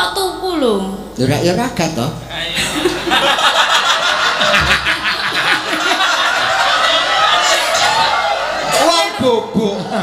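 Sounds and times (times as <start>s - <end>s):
woman laughing into microphone: 2.6s - 6.6s.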